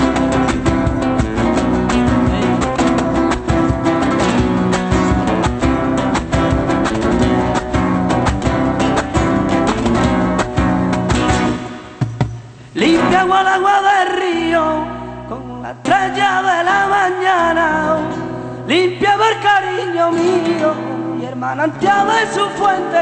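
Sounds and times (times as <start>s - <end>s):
flamenco acoustic guitar: 0.0s - 23.0s.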